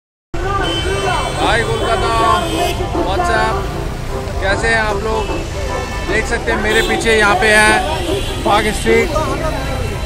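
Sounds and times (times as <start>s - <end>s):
crowd noise: 0.4s - 10.0s
traffic rumble: 0.4s - 10.0s.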